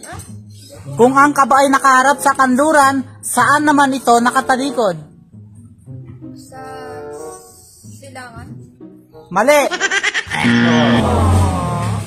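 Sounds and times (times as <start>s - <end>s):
comic wrong-answer sound effect: 10.3s - 12.0s.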